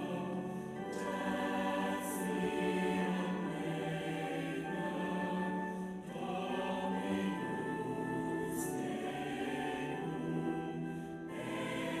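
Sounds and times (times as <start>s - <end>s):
choir singing in harmony: 0.0s - 12.0s.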